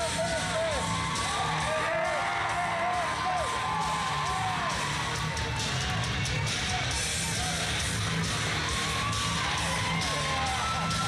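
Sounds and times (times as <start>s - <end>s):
crowd yelling and whooping: 0.0s - 11.0s
rock music over pa: 0.0s - 11.0s.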